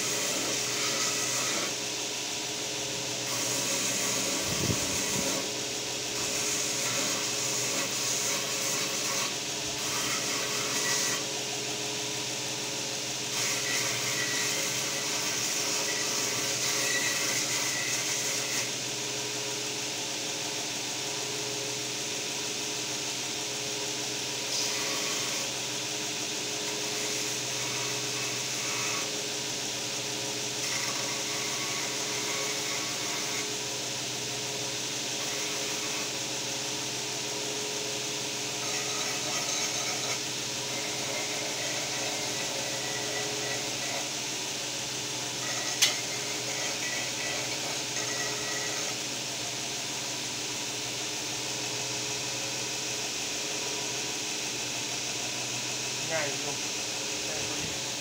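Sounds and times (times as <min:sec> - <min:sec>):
electric belt grinder running: 0:00.0 - 0:58.0.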